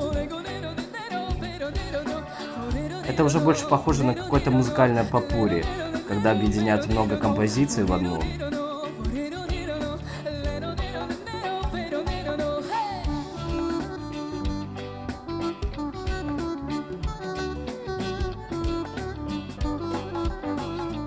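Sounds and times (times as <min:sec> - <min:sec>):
woman singing pop songs: 0:00.0 - 0:21.0
band accompaniment with steady beat: 0:11.1 - 0:21.0.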